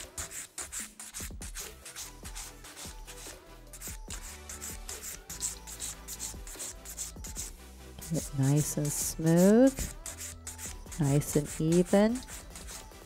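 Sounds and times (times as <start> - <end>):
background music: 0.0 - 13.0
nail file rasping: 0.0 - 13.0.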